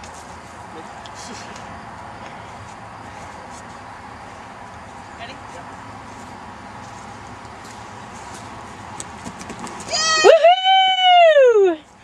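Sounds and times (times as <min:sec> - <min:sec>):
person screaming: 0:09.9 - 0:11.8.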